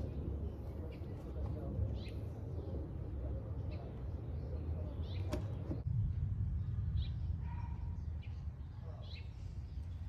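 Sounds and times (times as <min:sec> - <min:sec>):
bird chirp: 0:00.0 - 0:10.0
steady low rumble: 0:00.0 - 0:10.0.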